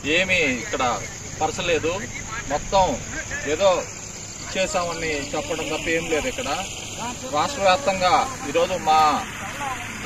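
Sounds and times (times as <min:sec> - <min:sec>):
crickets droning: 0:00.0 - 0:10.0.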